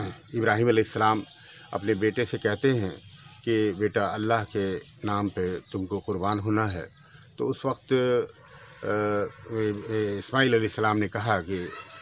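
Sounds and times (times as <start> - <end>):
crickets chirring: 0.0 - 12.0
man speaking: 0.0 - 12.0.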